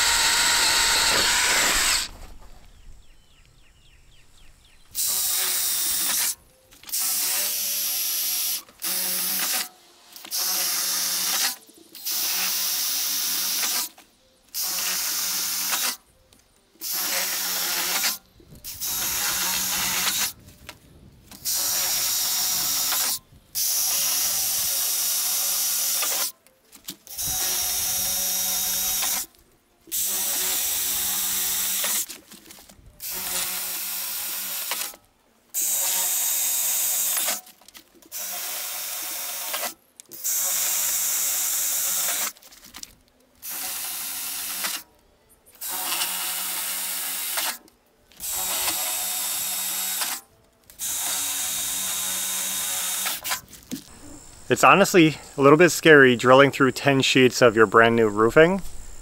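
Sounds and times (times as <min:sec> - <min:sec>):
cordless drill boring through metal: 0:00.0 - 0:02.1, 0:05.0 - 0:14.0, 0:16.8 - 0:20.4, 0:21.4 - 0:26.3, 0:27.1 - 0:29.3, 0:29.9 - 0:32.1, 0:33.0 - 0:35.0, 0:38.1 - 0:42.4, 0:48.2 - 0:50.2, 0:50.8 - 0:53.4.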